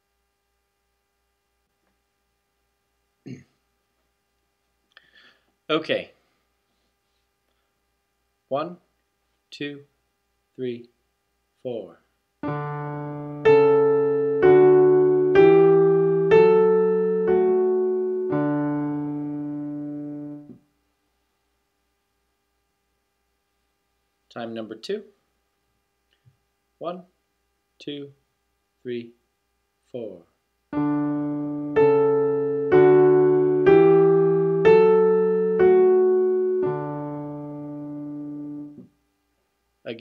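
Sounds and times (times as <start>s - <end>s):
piano octave chord: 12.4s - 20.6s, 30.7s - 38.9s.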